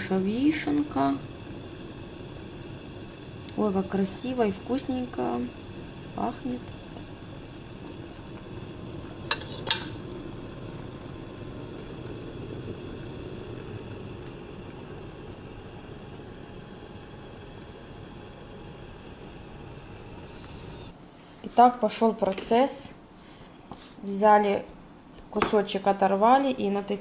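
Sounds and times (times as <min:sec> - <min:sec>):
syrup boiling in a saucepan: 0:00.0 - 0:21.0.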